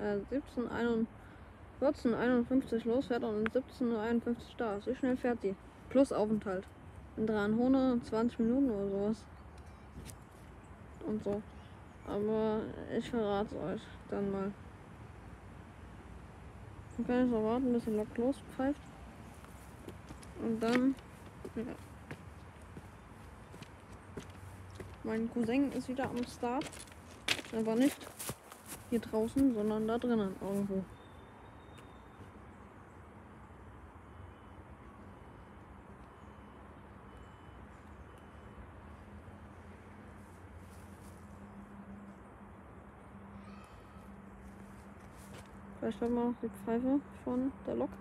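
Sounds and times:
footsteps on gravel: 19.3 - 30.9.

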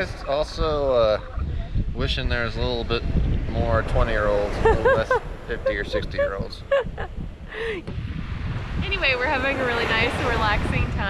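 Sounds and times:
wind buffeting microphone: 0.0 - 11.0
person speaking: 3.6 - 7.8.

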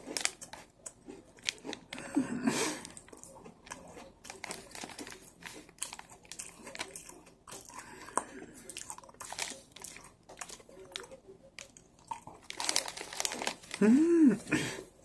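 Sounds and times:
cookie crunching: 0.0 - 14.5
plastic wrapper crinkling: 2.8 - 7.1, 9.0 - 14.0.

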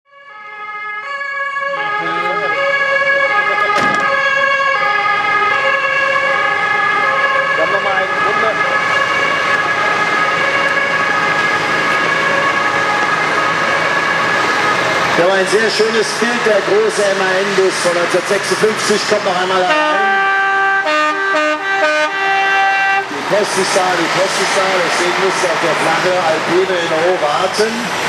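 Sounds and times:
loud steady multi-pitch tone: 19.7 - 23.1.

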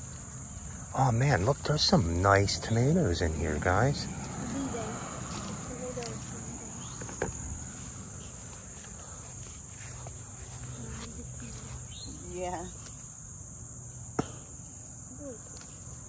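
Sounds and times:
crickets chirping: 0.0 - 16.0
footsteps and rustling through plants: 4.2 - 13.1.

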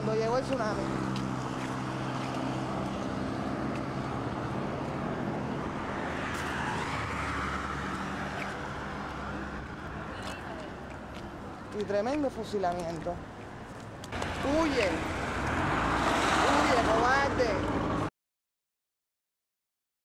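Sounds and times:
steady traffic noise: 0.0 - 18.1
vehicle engine humming: 0.0 - 18.1
passing vehicle rushing: 0.7 - 10.6, 14.2 - 18.1.

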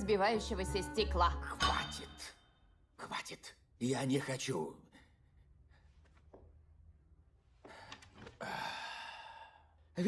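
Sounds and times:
man straining sigh: 8.4 - 9.6.

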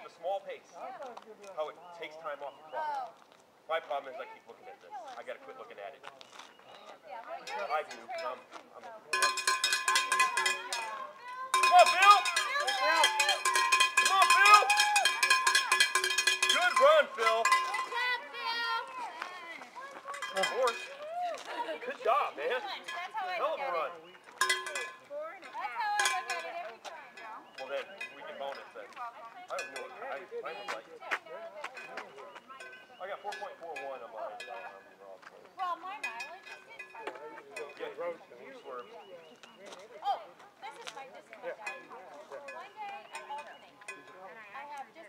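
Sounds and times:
voices calling out and cheering: 4.2 - 45.0
cowbell rung rapidly: 9.1 - 18.2, 20.0 - 21.0, 22.6 - 23.7, 24.4 - 25.1, 25.7 - 28.8, 29.5 - 30.3, 41.6 - 44.4.

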